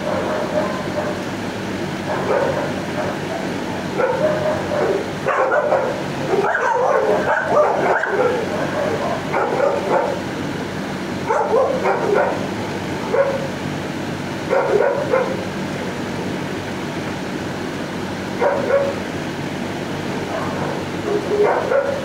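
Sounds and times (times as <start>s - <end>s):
dogs barking and yipping: 0.0s - 1.4s, 2.0s - 10.5s, 11.2s - 13.6s, 14.4s - 15.5s, 18.4s - 19.1s, 20.1s - 22.0s
steady low hum: 0.0s - 22.0s.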